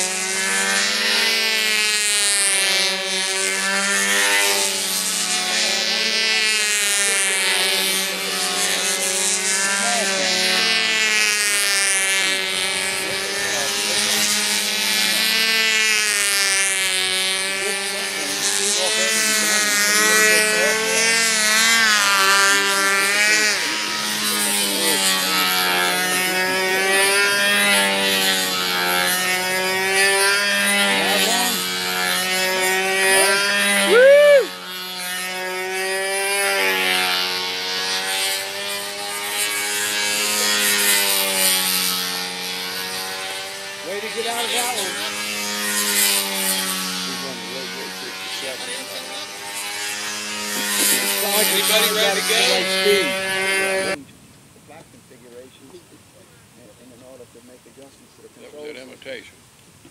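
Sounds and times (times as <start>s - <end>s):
model airplane engine: 0.0s - 59.9s.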